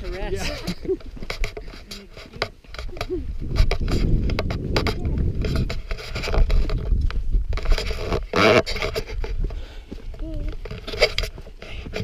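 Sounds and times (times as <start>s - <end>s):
footsteps on gritty dirt: 0.0s - 12.0s
microphone rubbing and rumble: 0.0s - 12.0s.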